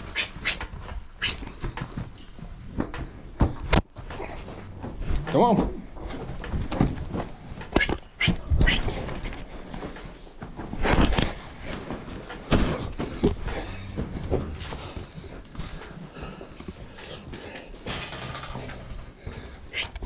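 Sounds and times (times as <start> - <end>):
knocks and bangs in cattle pen: 0.0 - 20.0.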